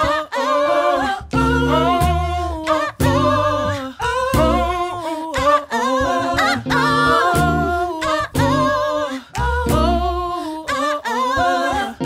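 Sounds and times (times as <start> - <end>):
voices singing a cappella harmonies: 0.0 - 12.0
deep low singing part: 1.2 - 5.0.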